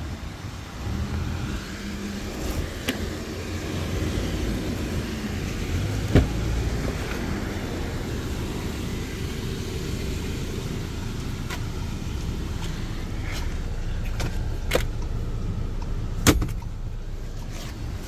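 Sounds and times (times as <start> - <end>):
low rumble: 0.0 - 16.2
car door latch clicking open: 16.2 - 16.7.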